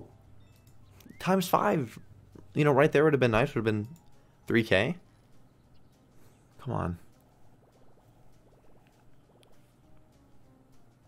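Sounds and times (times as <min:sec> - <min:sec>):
soft slot game clicks: 0:00.0 - 0:01.7, 0:02.3 - 0:11.0
rapid ticking: 0:02.6 - 0:11.0.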